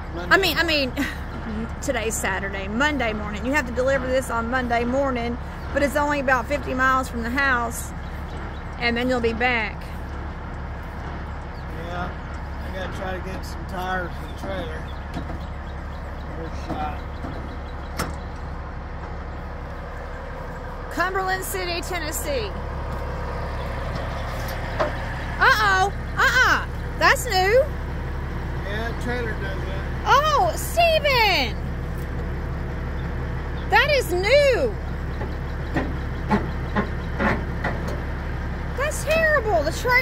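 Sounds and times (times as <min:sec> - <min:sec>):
diesel truck engine idling: 0:00.0 - 0:40.0.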